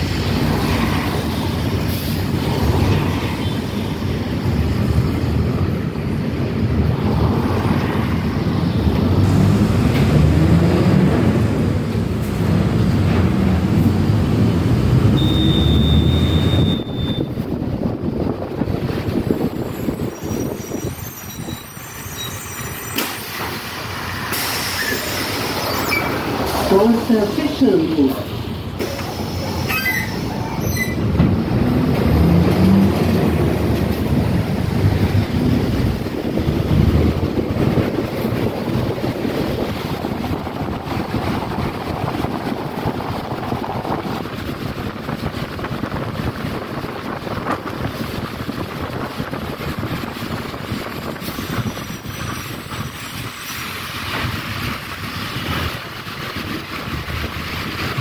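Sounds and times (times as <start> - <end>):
bus engine and tyre noise: 0.0 - 58.0.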